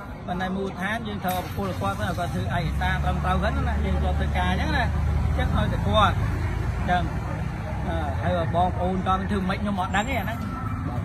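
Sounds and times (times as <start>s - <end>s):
vehicle engine rumble: 0.0s - 11.0s
man talking: 0.2s - 11.0s.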